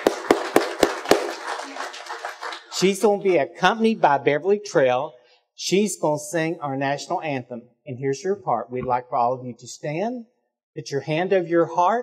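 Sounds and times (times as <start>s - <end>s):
nearby sharp claps: 0.0s - 2.8s
audience applauding: 0.0s - 3.3s.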